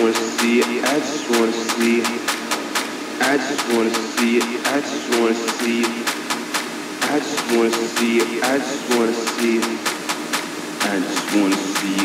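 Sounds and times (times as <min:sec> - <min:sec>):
chopped vocal sample: 0:00.0 - 0:12.0
techno beat over sound system: 0:00.0 - 0:12.0.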